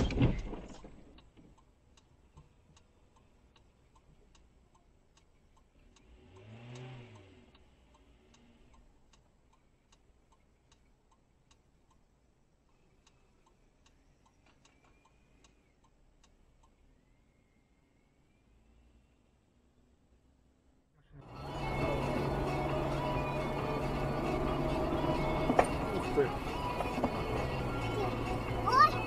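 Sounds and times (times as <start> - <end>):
faint regular ticking: 1.2 - 18.3.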